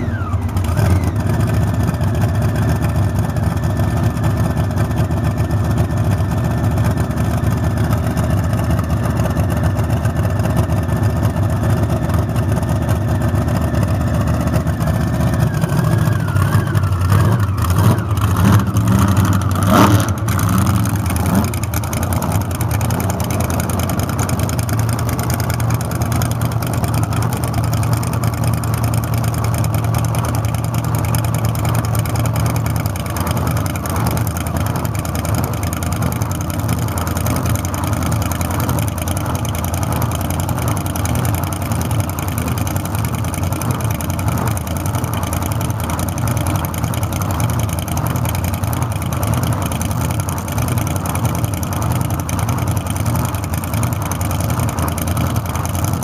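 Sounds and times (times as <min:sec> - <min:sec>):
dragster engine idling loudly: 0:00.0 - 0:56.0.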